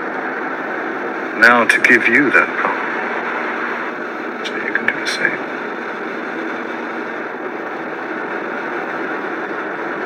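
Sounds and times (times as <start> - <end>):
car engine hum: 0.0 - 10.0
road noise inside car: 0.0 - 10.0.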